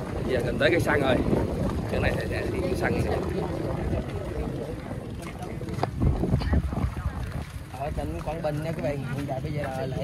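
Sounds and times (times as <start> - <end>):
people talking nearby: 0.0 - 10.0
wind rumbling on microphone: 0.0 - 10.0.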